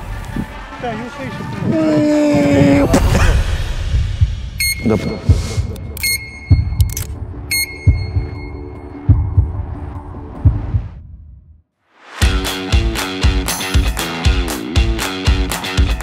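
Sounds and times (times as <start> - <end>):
heartbeat thumps: 2.3 - 11.5
short high electronic beeps: 4.6 - 5.2, 5.8 - 8.7.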